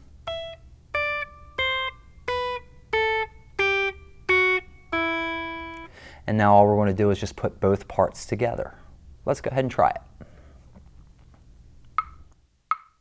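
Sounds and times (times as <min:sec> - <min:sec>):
electric guitar plucked notes: 0:00.0 - 0:05.9.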